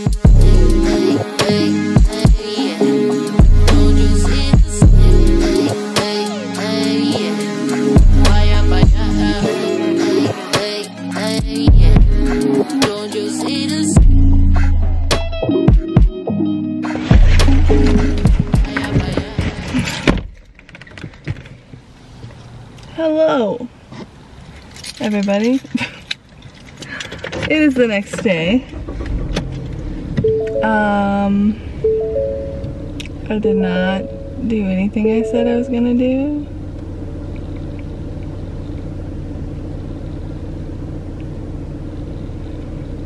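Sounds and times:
car cabin rumble: 0:11.7 - 0:12.3, 0:17.0 - 0:20.4, 0:27.5 - 0:43.0.

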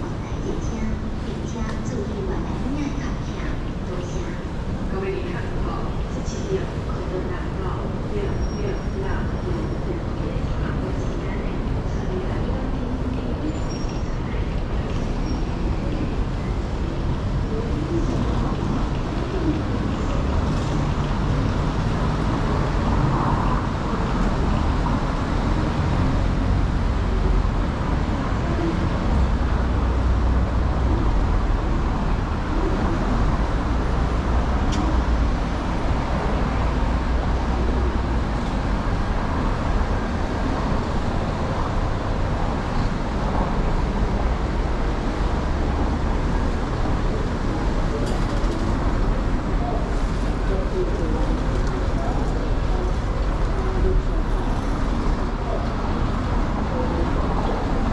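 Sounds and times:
cars passing: 0:14.4 - 0:57.9.

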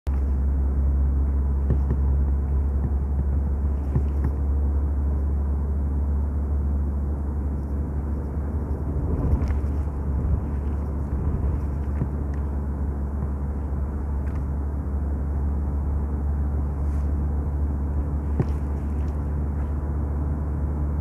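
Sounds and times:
road and tyre noise inside car: 0:00.1 - 0:21.0.

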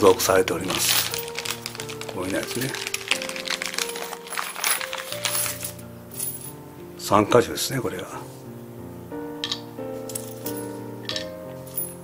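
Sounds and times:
plastic bag rustling: 0:00.0 - 0:05.8
soft background music: 0:00.0 - 0:12.0
metal bolts clinking: 0:09.4 - 0:12.0.

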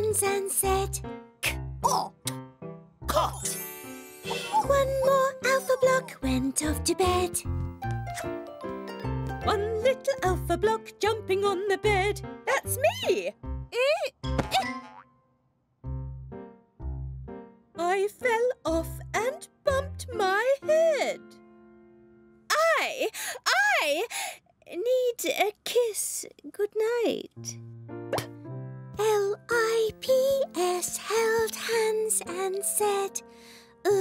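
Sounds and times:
children's song accompaniment: 0:00.0 - 0:01.0, 0:03.6 - 0:07.6, 0:29.0 - 0:33.2
cartoon springy boing: 0:14.3 - 0:15.2, 0:28.1 - 0:28.4.

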